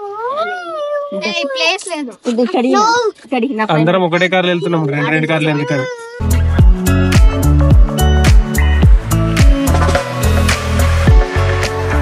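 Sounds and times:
child whining: 0.0 - 1.6, 4.9 - 6.4
child chattering: 4.2 - 6.6.

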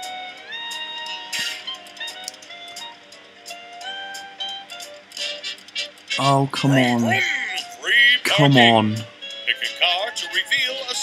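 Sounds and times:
slot game music: 1.1 - 7.3, 8.3 - 9.6.

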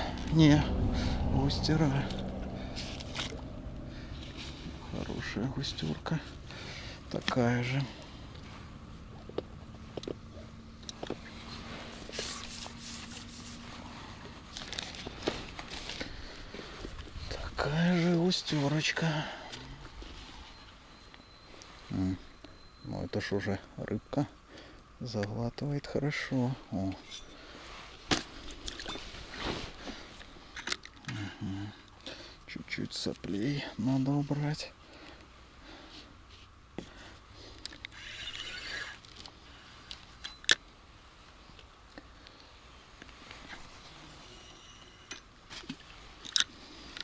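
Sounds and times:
soft rush of noise: 0.0 - 25.2.

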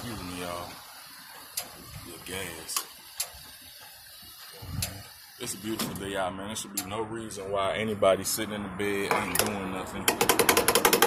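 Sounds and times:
faint outdoor background hiss: 0.0 - 10.8.

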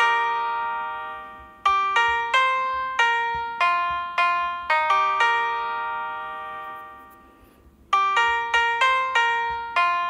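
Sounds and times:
sampled piano notes: 0.0 - 10.0.

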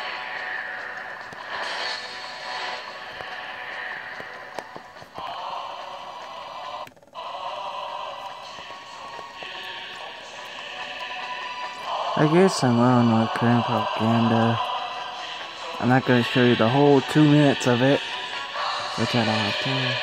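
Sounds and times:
thin music from tv speaker: 0.0 - 20.0.

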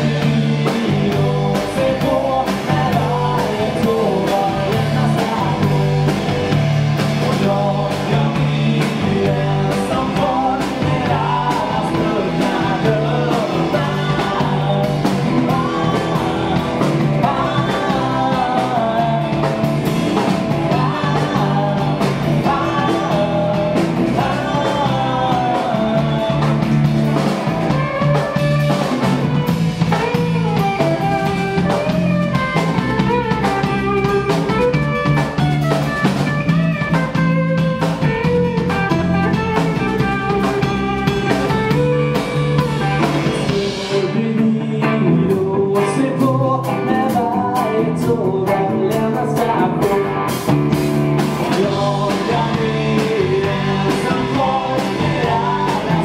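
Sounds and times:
bass guitar: 0.0 - 56.0
drums: 0.0 - 56.0
electric guitar: 0.0 - 56.0
man singing lead: 0.0 - 56.0.

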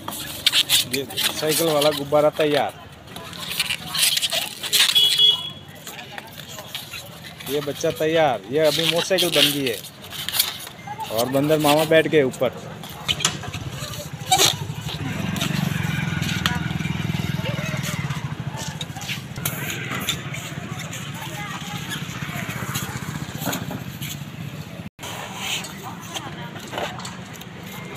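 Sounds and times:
indistinct voices: 0.0 - 27.9.

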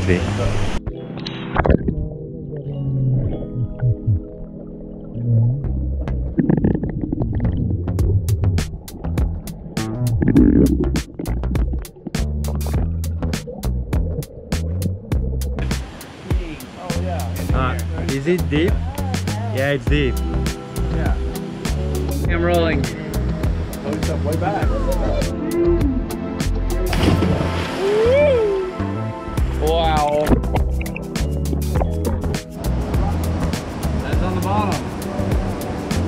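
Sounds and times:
background music: 0.0 - 36.0.

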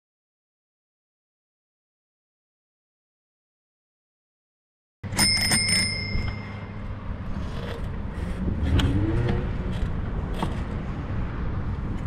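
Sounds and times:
bicycle bell ringing: 5.0 - 6.9.

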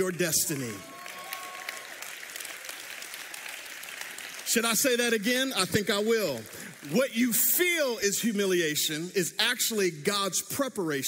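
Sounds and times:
crowd applauding: 0.0 - 7.4.

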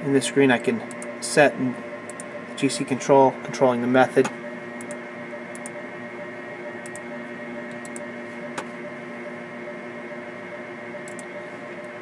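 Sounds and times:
equipment fans humming: 0.0 - 12.0
sharp click: 0.9 - 1.1, 4.2 - 5.8, 6.8 - 7.0, 11.0 - 11.3.

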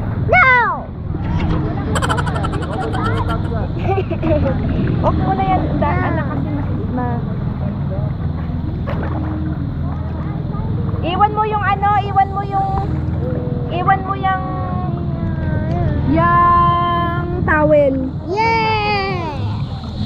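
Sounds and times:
children chattering and calling: 1.8 - 5.0, 18.2 - 20.0.

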